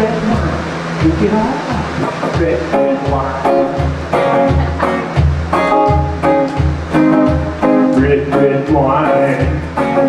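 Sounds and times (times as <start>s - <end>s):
electric guitar strumming chords: 0.0s - 10.0s
person singing: 7.9s - 10.0s.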